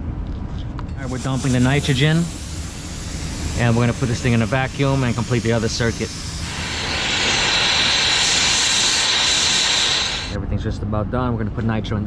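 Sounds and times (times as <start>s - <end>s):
torch flame hissing: 1.0s - 10.4s.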